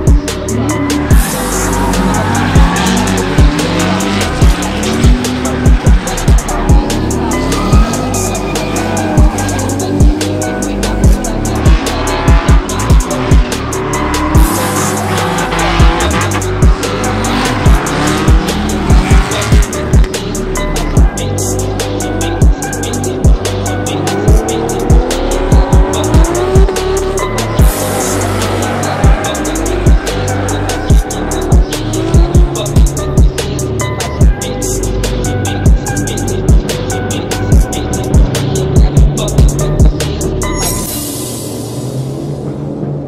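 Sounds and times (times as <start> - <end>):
music with heavy beat: 0.0 - 42.5
car engines revving: 0.0 - 43.0
tyres squealing: 0.5 - 41.0.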